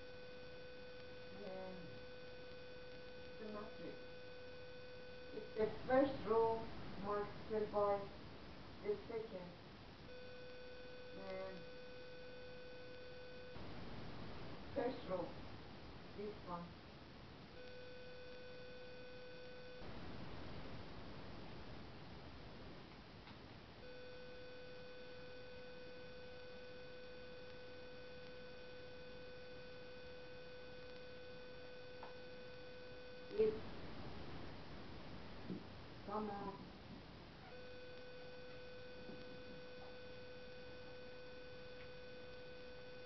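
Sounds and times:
faint buzzy tone: 0:00.0 - 0:43.0
faint steady hiss: 0:00.0 - 0:43.0.

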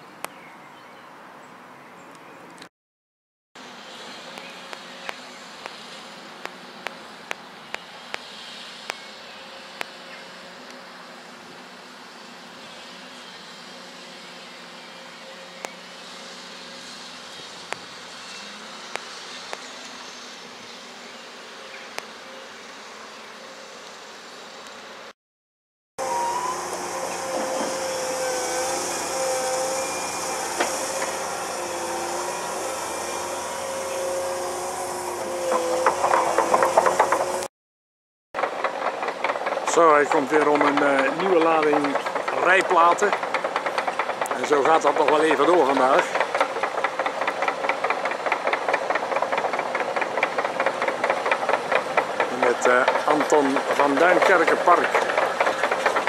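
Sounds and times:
excavator diesel engine: 0:26.0 - 0:37.5, 0:38.4 - 0:56.0
hydraulic whine: 0:26.0 - 0:37.5, 0:38.4 - 0:56.0.

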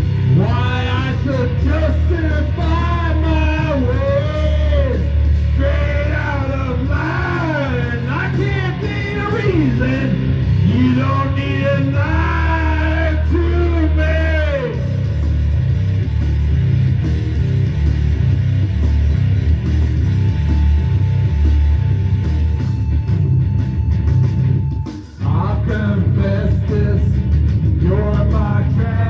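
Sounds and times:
hard rock band playing: 0:00.0 - 0:29.0
man singing: 0:00.2 - 0:15.3, 0:25.2 - 0:29.0.

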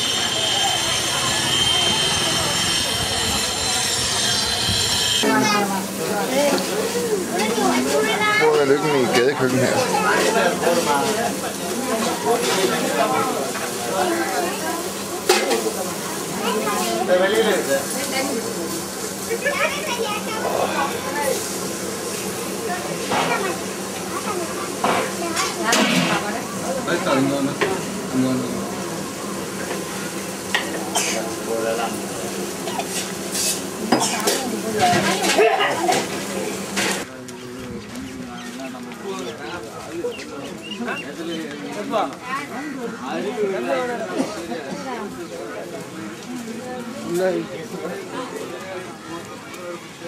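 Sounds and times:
kitchen hiss: 0:00.0 - 0:37.0
plates and utensils clattering: 0:11.9 - 0:12.8, 0:15.2 - 0:15.8, 0:32.6 - 0:37.0.

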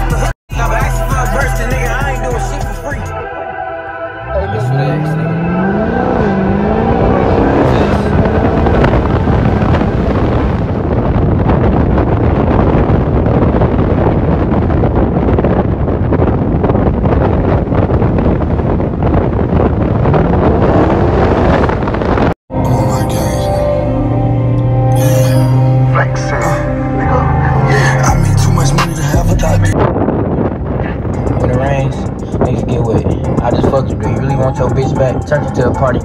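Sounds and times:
car engine accelerating: 0:04.0 - 0:14.6, 0:17.1 - 0:36.0
wind noise: 0:04.1 - 0:23.3, 0:27.4 - 0:36.0.

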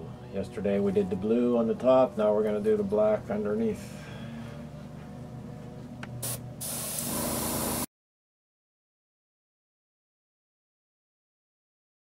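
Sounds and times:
steady low hum: 0:00.0 - 0:07.9
airbrush air hiss: 0:06.2 - 0:07.9.

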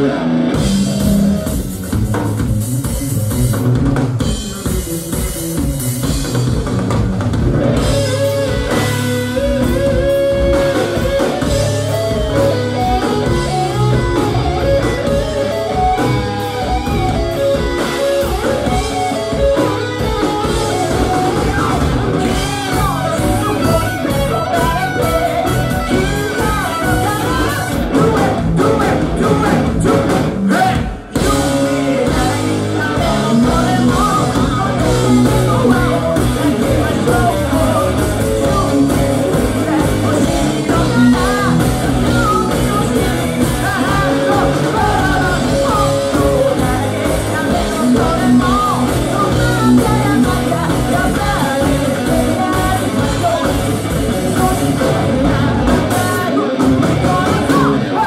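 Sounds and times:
electric guitar melody: 0:00.0 - 0:58.0
live rock band playing: 0:00.0 - 0:58.0
person singing: 0:07.9 - 0:58.0.

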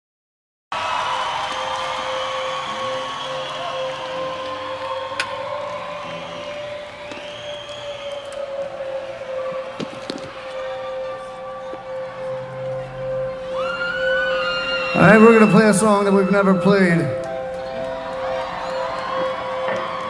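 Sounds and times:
large outdoor crowd noise: 0:00.7 - 0:20.0
amplified drone note: 0:01.6 - 0:20.0.

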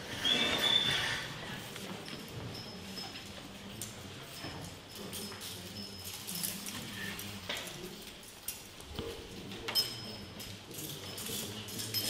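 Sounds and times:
low room murmur: 0:00.0 - 0:12.0
handcuffs clicking and clinking: 0:04.6 - 0:12.0.

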